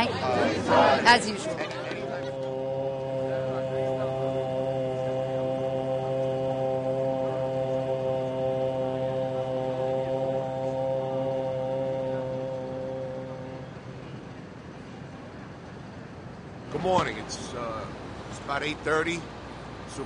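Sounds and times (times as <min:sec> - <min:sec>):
low sustained drone: 0:00.0 - 0:15.0.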